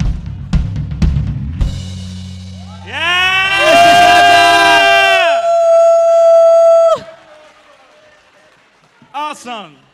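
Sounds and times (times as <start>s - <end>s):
audience whooping cheers: 2.6s - 8.5s.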